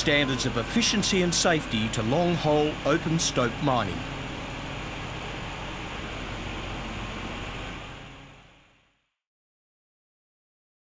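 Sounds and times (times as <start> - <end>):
high-pressure water jet hissing: 0.0 - 8.0.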